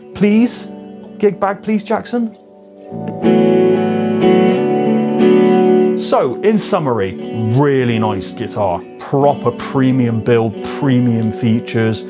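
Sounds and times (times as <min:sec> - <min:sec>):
guitar chords ringing: 0:00.0 - 0:12.0.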